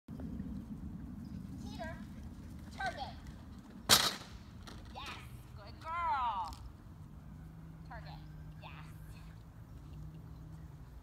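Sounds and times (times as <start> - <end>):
teeter board banging on ground: 3.9 - 4.9.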